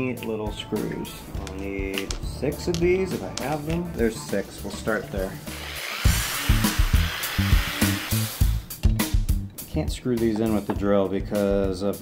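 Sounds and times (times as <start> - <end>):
background music with steady beat: 0.0 - 12.0
cordless drill boring into plywood: 5.4 - 8.6.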